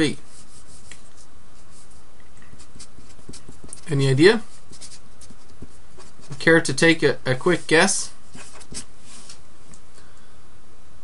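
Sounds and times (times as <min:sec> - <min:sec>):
person speaking: 0:00.0 - 0:01.9, 0:02.5 - 0:08.9
steady background hiss: 0:00.0 - 0:11.0.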